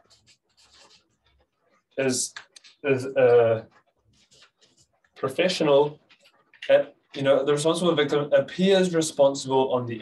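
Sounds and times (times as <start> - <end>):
marker scratching on paper: 0.0 - 2.0, 3.6 - 6.6.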